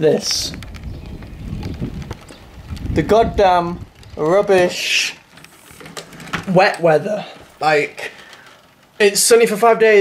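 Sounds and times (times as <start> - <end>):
wind buffeting microphone: 0.0 - 5.4
rain falling: 0.0 - 10.0.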